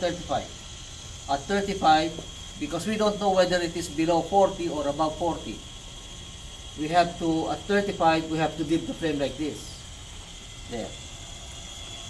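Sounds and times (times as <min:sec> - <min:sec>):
faint high whine: 0:00.0 - 0:12.0
machine whirring: 0:00.0 - 0:12.0.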